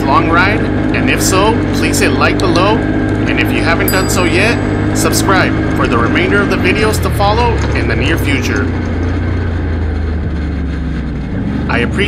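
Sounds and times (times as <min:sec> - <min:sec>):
atv engine running at low speed: 0:00.0 - 0:12.0.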